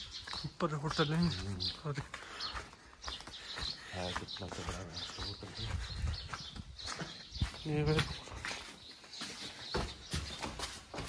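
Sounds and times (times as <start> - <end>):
footsteps on stone pavement: 0.0 - 11.0.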